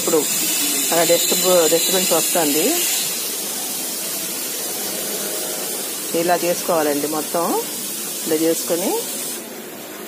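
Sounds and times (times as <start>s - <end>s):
pressure sprayer hissing: 0.0s - 10.0s.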